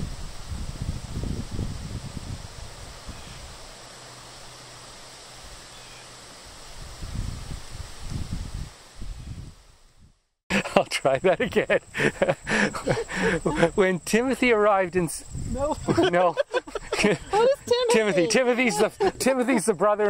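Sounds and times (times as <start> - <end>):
wind buffeting microphone: 0.0 - 3.7, 6.7 - 10.2, 11.2 - 19.7.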